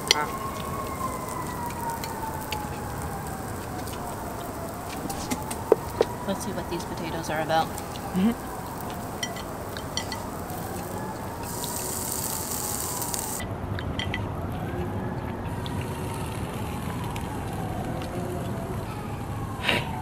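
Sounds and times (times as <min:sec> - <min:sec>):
emergency siren wailing: 0:00.0 - 0:20.0
outdoor background noise: 0:00.0 - 0:20.0.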